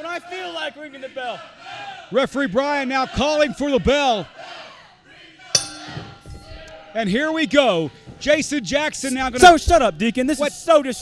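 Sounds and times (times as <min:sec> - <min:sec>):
ring bell ringing: 0:05.6 - 0:07.2.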